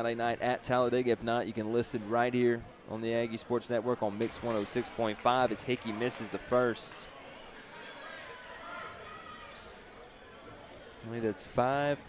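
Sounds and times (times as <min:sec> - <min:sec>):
distant crowd chatter: 0:00.0 - 0:12.0.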